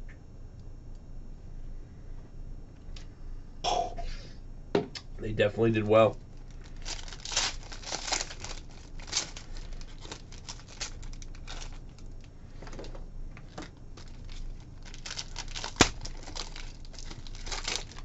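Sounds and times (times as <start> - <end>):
plastic packaging crinkling: 6.0 - 18.0.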